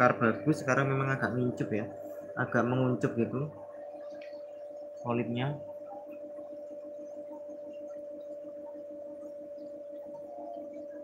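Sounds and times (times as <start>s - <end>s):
aquarium equipment humming: 0.0s - 11.0s.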